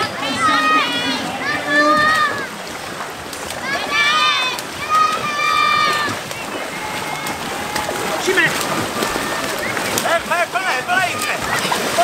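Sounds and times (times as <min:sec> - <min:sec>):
voices shouting: 0:00.0 - 0:12.0
water splashing from paddling: 0:00.0 - 0:12.0.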